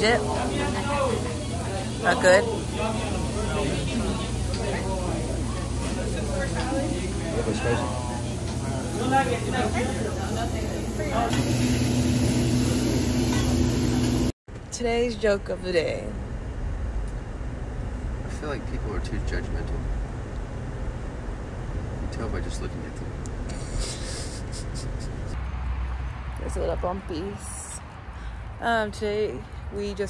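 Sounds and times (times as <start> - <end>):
restaurant background hum: 0.0 - 30.0
breathy scratchy hiss: 23.5 - 25.4.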